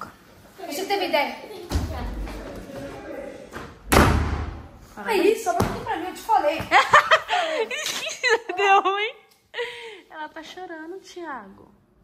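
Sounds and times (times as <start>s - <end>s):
door slamming: 1.7s - 2.4s, 3.5s - 4.7s.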